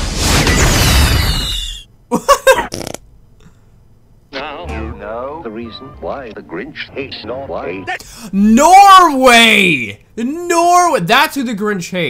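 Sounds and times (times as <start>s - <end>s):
man laughing: 2.1s - 2.8s.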